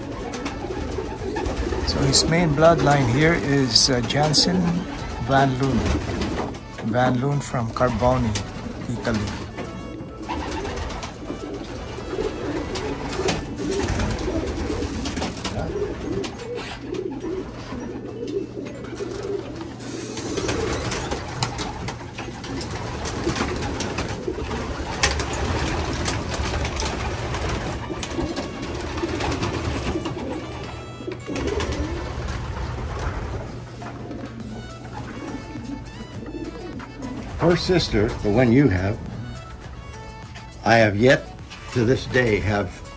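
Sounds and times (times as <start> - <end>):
pigeons cooing: 0.0 - 42.9.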